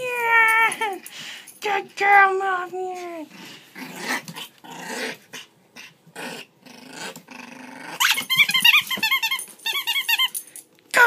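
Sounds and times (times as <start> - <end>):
puppy growling: 3.3 - 8.6
puppy squeaks: 8.0 - 10.4.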